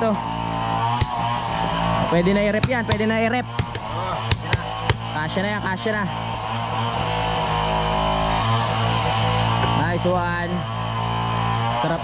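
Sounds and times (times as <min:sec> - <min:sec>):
power tool cutting steel: 0:00.0 - 0:12.0.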